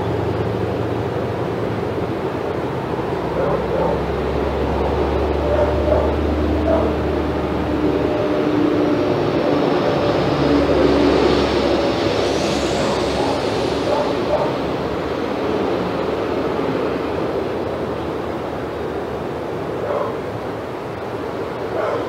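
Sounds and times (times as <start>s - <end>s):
mechanical drone: 2.7s - 17.1s
low hum: 3.3s - 16.2s
faint high whine: 10.5s - 15.3s.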